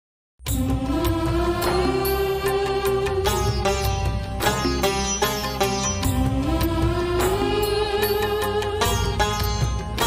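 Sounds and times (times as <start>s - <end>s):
instrumental backing: 0.5s - 10.0s.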